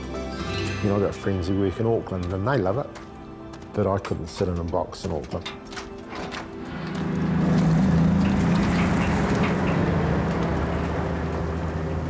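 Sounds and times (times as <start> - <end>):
tyre noise on gravel: 1.7 - 11.7
diesel truck engine running: 5.3 - 12.0.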